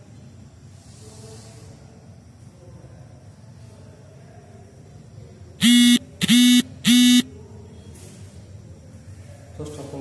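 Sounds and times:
buzzy horn blasts: 5.6 - 7.2.

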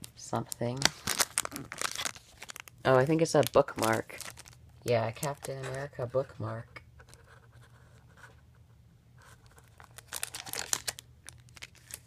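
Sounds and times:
paper and plastic packaging rustling: 0.0 - 6.4, 9.2 - 12.0.

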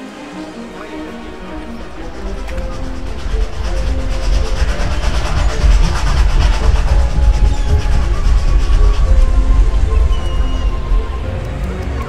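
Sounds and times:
background music: 0.0 - 12.0
steam train rumbling clatter: 0.3 - 12.0.

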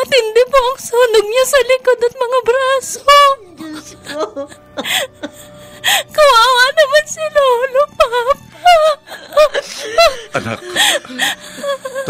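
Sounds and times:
girl sobbing: 2.9 - 12.0
gasping breaths: 9.1 - 12.0.

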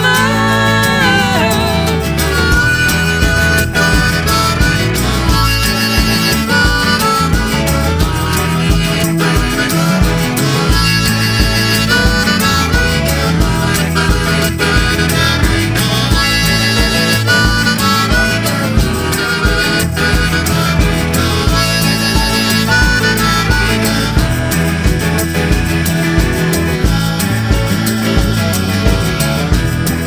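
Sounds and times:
band accompaniment with steady beat: 0.0 - 30.0
harmonica solo: 0.0 - 30.0.

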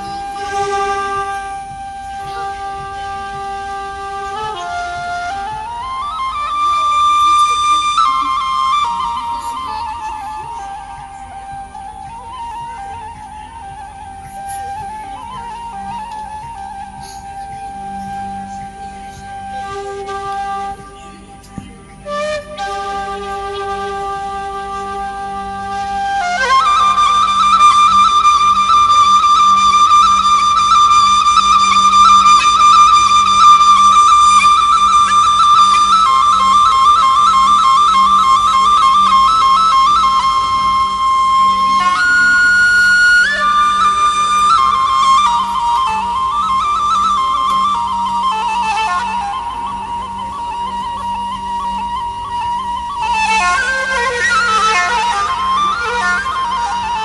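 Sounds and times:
flute playing long notes: 0.0 - 57.0.

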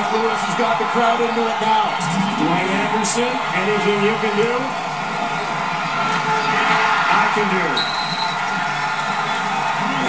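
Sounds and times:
stadium crowd cheering on television: 0.0 - 10.0.

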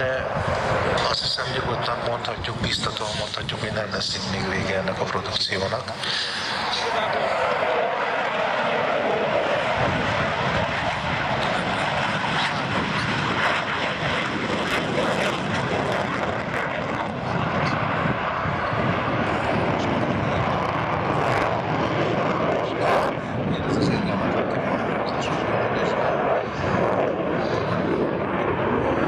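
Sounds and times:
jet engines in afterburner: 0.0 - 29.0.

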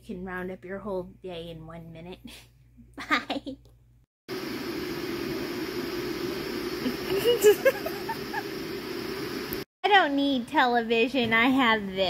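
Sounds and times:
woman speaking: 0.0 - 2.4, 9.8 - 12.0
low mechanical hum: 3.6 - 9.6.

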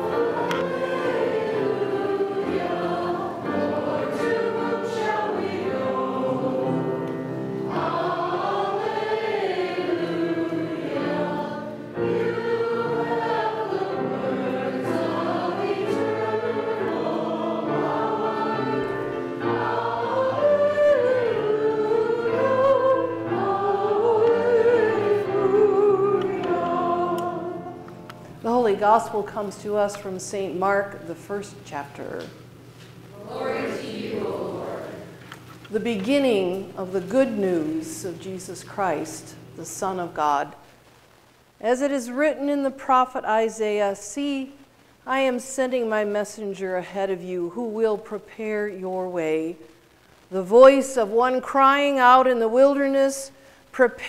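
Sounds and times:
congregation singing: 0.0 - 30.2, 33.1 - 40.5.

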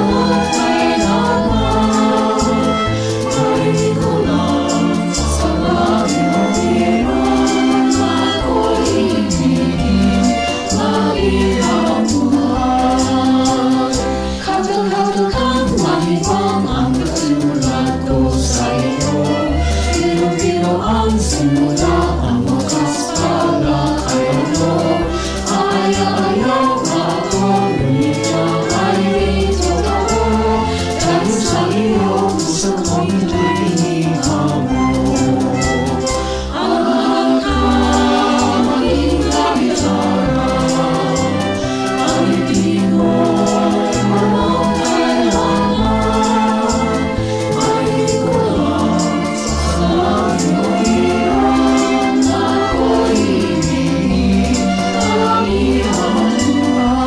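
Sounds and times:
bass line accompaniment: 0.0 - 57.0
light percussion beat: 0.0 - 57.0
young choir singing: 0.0 - 57.0.

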